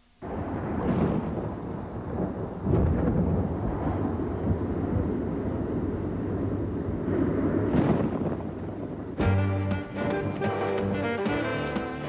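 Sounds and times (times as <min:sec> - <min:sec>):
deep rolling rumble: 0:00.2 - 0:12.0.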